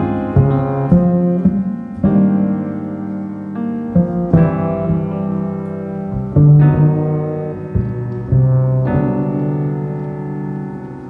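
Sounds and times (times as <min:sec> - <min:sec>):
bowed double bass: 0:00.0 - 0:11.0
piano chords: 0:00.0 - 0:11.0.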